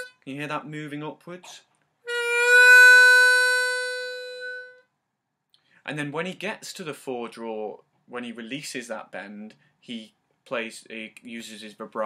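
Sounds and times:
harmonica note bending up: 0.0s - 0.2s, 2.0s - 4.9s.

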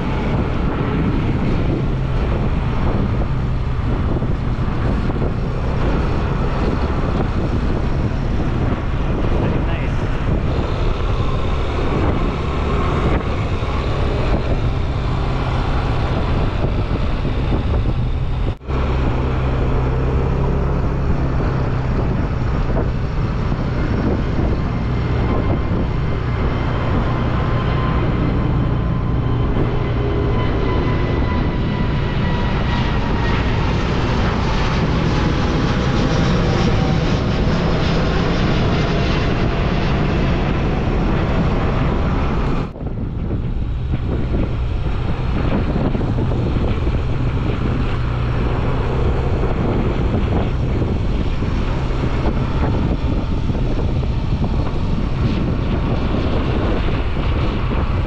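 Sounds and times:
jet airliner passing overhead: 0.0s - 58.0s
motorbike wind and road noise: 0.0s - 58.0s.

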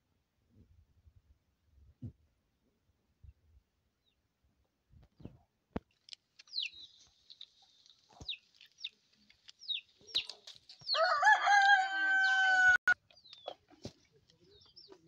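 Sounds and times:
small birds chirping: 3.2s - 4.3s, 4.9s - 15.0s
rooster crowing: 11.0s - 13.0s.

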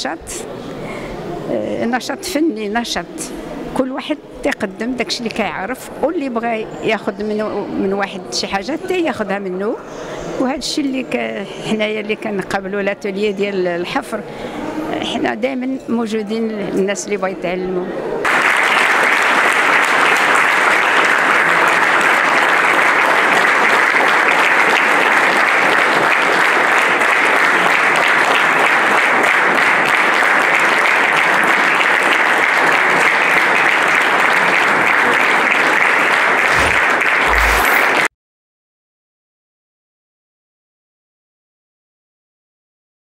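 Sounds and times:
audience applause: 18.2s - 38.1s.

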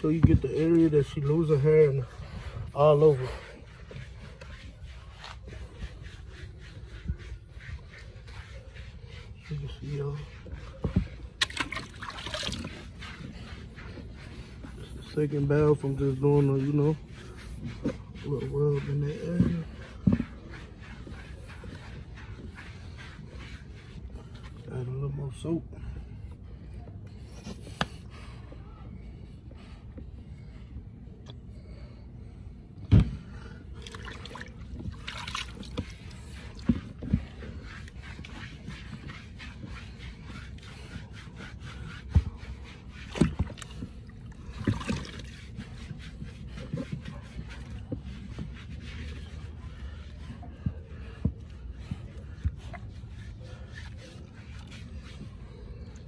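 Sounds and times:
hands scrubbing wet dog coat: 0.0s - 31.9s, 32.6s - 56.0s
water sloshing in a plastic tub: 9.4s - 22.8s, 32.9s - 56.0s
small water splashes: 11.4s - 12.6s.

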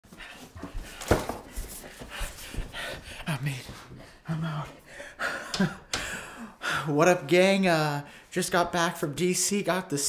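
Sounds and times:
person panting and gasping: 0.1s - 7.0s.

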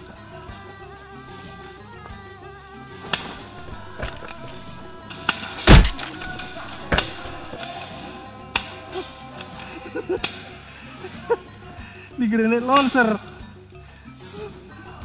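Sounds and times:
faint background music: 0.0s - 15.0s
airsoft guns firing: 3.6s - 5.0s, 5.7s - 7.6s
heavy thump: 3.6s - 5.0s, 5.7s - 7.6s.

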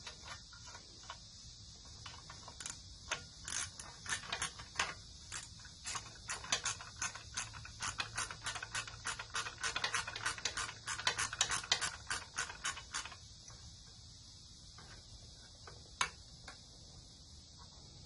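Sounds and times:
steady hiss: 0.0s - 18.0s
socket ratchet clicking: 1.9s - 13.3s.

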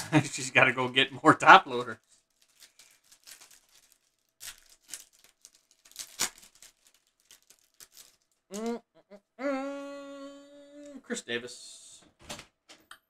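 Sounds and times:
foil wrapper crinkling: 1.8s - 8.8s.

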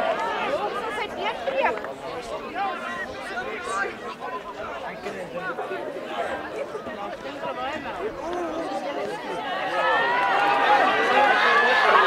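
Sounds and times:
overlapping voices calling out: 0.0s - 12.0s.

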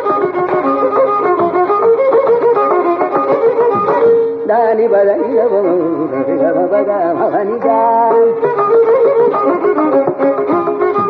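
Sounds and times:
hand drum strokes: 0.0s - 4.3s
violin playing quick phrases: 0.0s - 4.5s, 8.1s - 11.0s.

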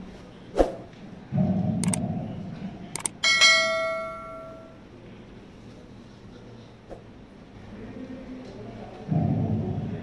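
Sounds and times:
mouse click: 3.0s - 3.2s.

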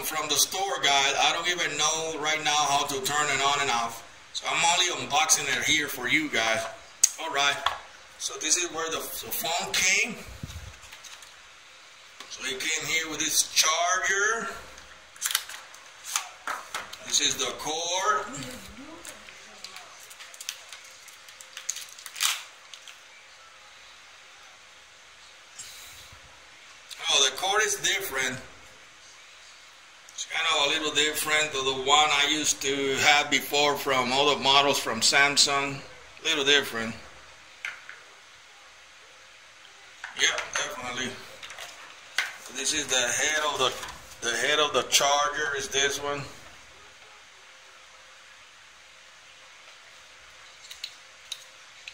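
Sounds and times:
low hiss: 0.0s - 51.9s
plastic wrap clicks and crinkles: 10.7s - 11.4s, 15.2s - 17.2s, 18.9s - 23.2s, 50.4s - 51.9s.

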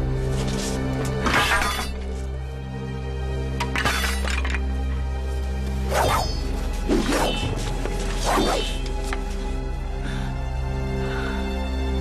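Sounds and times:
background music with held notes: 0.0s - 12.0s
sword blades clashing and scraping: 0.4s - 2.2s, 5.9s - 8.8s.

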